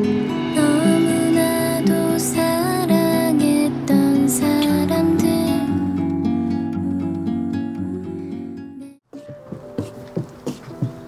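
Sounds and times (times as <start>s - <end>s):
soft acoustic guitar: 0.0s - 9.0s.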